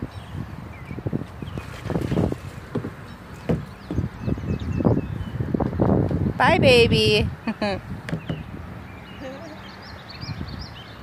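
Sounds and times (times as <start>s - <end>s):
wind buffeting microphone: 0.0s - 11.0s
knocks: 2.7s - 4.1s, 8.1s - 8.5s.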